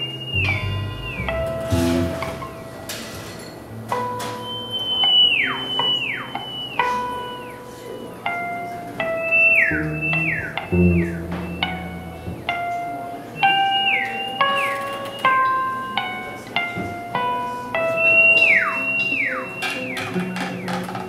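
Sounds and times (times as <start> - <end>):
theremin swooping: 0.0 - 2.9, 9.3 - 12.7
plucked acoustic guitar notes: 0.0 - 17.6.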